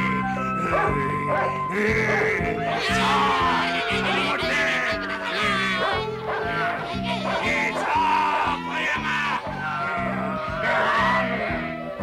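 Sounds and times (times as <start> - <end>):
background music with bass line: 0.0 - 12.0
cartoon dog yelping: 0.4 - 12.0.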